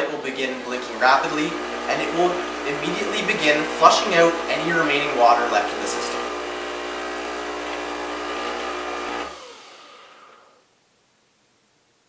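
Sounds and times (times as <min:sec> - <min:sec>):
water pump buzzing: 0:00.0 - 0:10.7.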